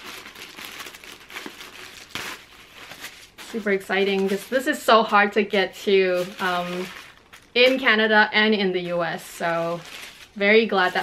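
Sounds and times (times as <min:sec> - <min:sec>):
tissue paper rustling and crinkling: 0:00.0 - 0:11.0.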